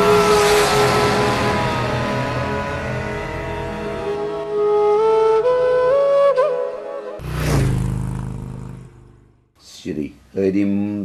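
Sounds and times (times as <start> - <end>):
falling whoosh: 7.2 - 9.1.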